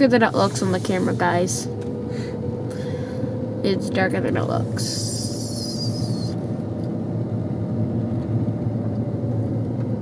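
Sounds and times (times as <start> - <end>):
car engine and tyre noise: 0.0 - 10.0.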